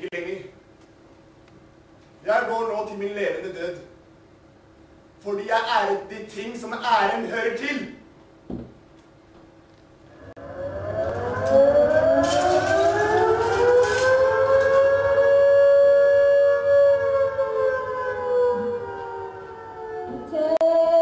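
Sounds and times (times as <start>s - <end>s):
wailing siren: 10.1s - 21.0s.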